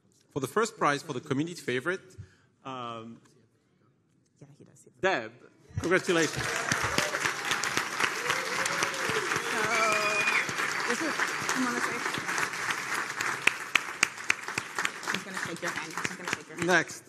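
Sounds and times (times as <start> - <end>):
audience applauding: 5.8 - 17.0.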